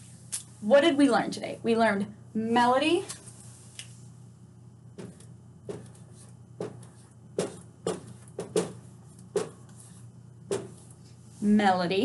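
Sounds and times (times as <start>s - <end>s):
marker writing on a whiteboard: 5.0s - 11.0s.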